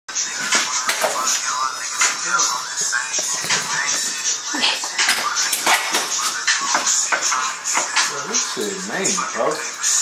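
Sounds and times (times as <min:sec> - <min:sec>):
indistinct voices: 0:00.2 - 0:10.0.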